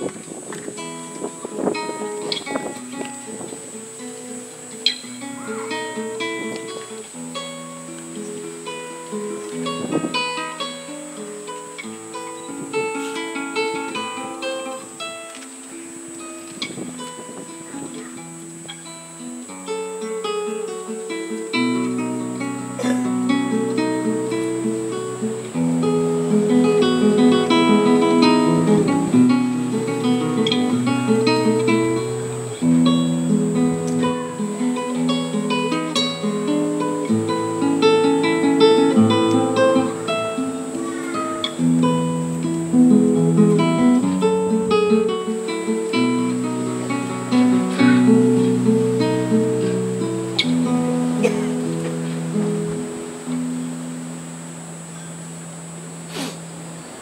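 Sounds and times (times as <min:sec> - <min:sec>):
classical guitar playing: 0:00.0 - 0:57.0.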